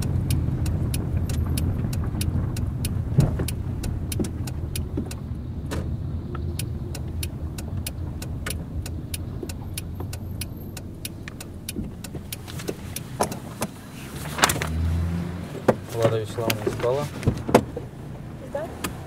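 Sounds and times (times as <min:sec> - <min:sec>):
car engine and tyre rumble: 0:00.0 - 0:19.0
turn signal indicator ticking: 0:00.0 - 0:19.0.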